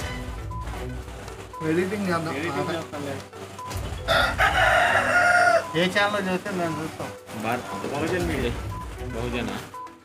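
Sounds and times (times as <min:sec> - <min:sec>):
rooster crowing: 0:04.0 - 0:05.8.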